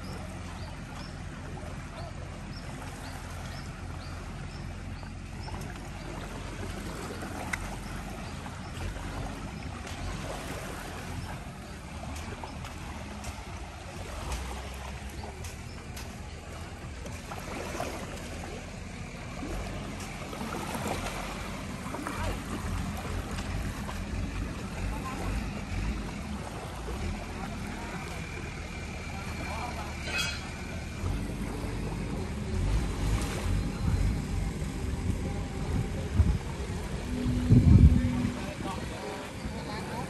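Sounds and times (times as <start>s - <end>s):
low motor hum: 0.0s - 40.0s
waves lapping on sand: 0.0s - 40.0s
loud low rumble: 10.9s - 40.0s
wind on microphone: 33.2s - 40.0s.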